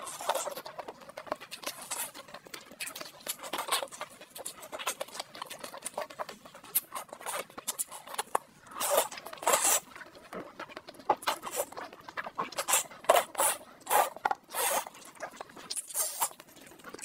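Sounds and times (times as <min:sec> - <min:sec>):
chicken meat tearing: 0:00.0 - 0:17.0
wet chewing and lip smacks: 0:00.0 - 0:17.0.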